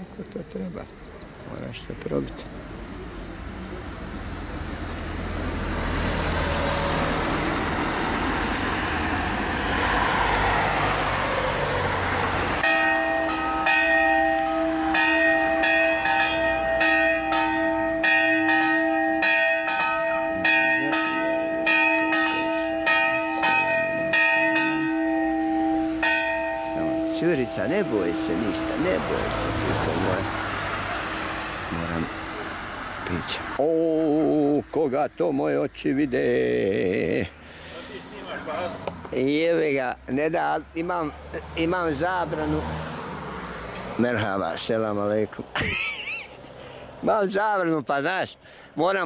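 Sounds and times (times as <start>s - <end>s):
bells ringing: 12.6s - 30.4s.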